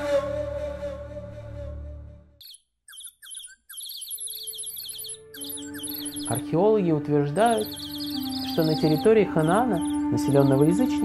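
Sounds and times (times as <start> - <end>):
songbirds chirping: 2.4 - 11.0
soft sustained music tones: 4.2 - 11.0.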